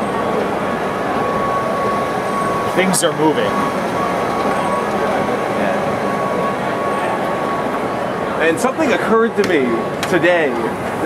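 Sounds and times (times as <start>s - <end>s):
thin steady tone: 0.0s - 10.0s
escalator mechanical drone: 0.0s - 11.0s
murmur of voices: 0.0s - 11.0s.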